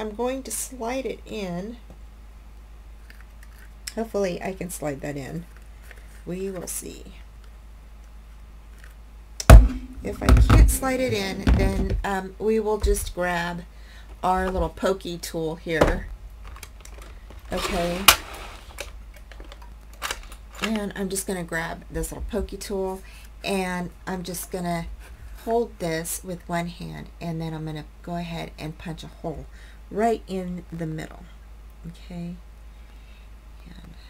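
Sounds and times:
steady low hum: 0.0s - 34.0s
paper and craft tools handled: 16.5s - 19.6s.

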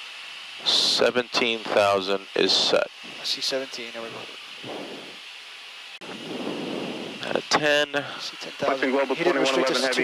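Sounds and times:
jet engine noise: 0.0s - 10.0s
rushing airflow in jet cockpit: 1.7s - 5.3s, 6.0s - 8.7s.

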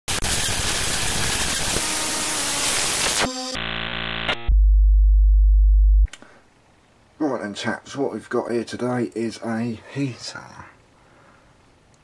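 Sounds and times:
short buzzy electronic tone: 1.3s - 4.8s.

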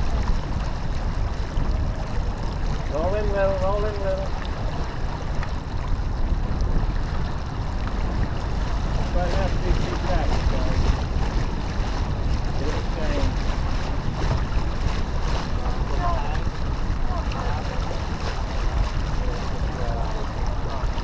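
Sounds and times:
water rushing along hull: 0.0s - 21.0s
wind buffeting microphone: 0.0s - 21.0s
faint voices: 15.4s - 21.0s.

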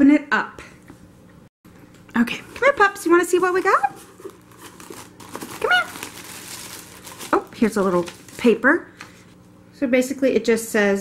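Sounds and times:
tissue paper and cardboard rustling: 2.2s - 8.8s.

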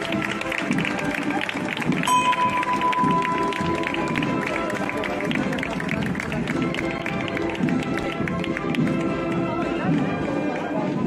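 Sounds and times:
crowd: 0.0s - 11.0s
processional music: 0.0s - 11.0s
bell stroke ringing: 2.0s - 4.4s.

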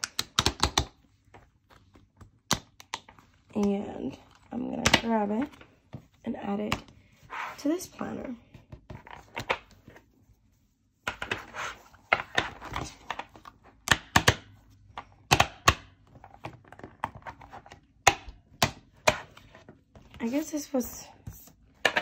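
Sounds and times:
sharp plastic snaps: 0.0s - 1.0s.

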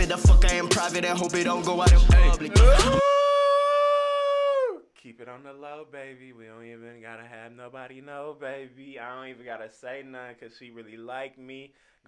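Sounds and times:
man singing a long high note: 0.0s - 3.3s.

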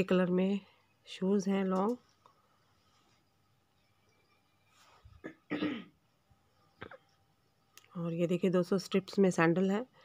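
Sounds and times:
woman coughing: 5.2s - 6.0s.

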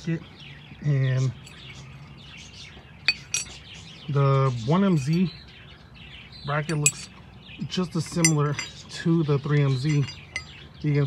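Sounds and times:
birds chirping: 0.0s - 11.0s
metal brackets clinking: 3.1s - 5.4s, 6.5s - 10.7s.

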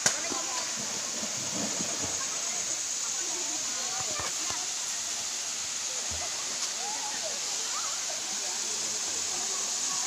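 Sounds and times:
waterfall pouring into pool: 0.0s - 10.0s
faint voices: 1.7s - 10.0s.

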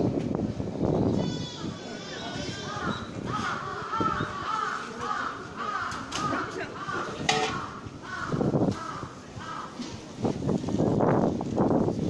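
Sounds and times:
crow cawing: 2.6s - 9.8s.

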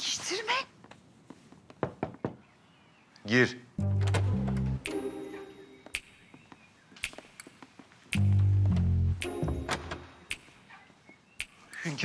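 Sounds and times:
knocks on a door: 1.8s - 2.4s.

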